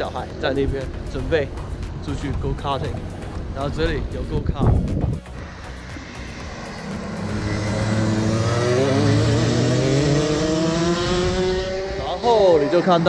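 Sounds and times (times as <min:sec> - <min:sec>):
go-kart engines accelerating: 0:05.3 - 0:13.0.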